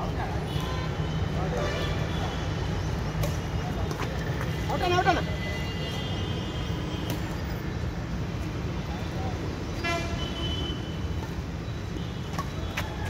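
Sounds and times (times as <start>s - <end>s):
low traffic rumble: 0.0s - 13.0s.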